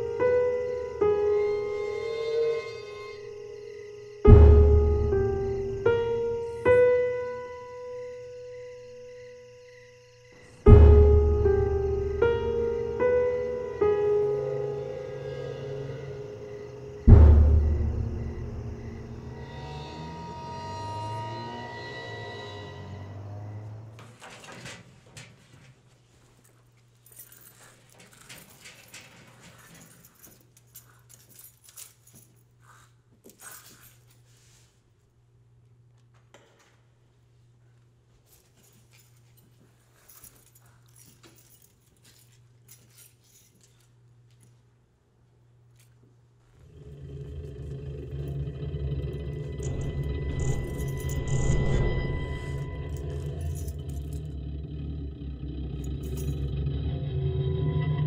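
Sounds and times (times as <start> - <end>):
low rumbling drone: 1.6 - 6.5, 10.6 - 24.0, 46.6 - 58.0
steady low hum: 10.6 - 23.9, 43.4 - 58.0
faint steady high tone: 18.1 - 23.9
keys jingling: 24.2 - 34.4, 38.2 - 44.7, 49.5 - 54.8, 55.8 - 56.6
metallic clicks and rattles: 27.2 - 32.2.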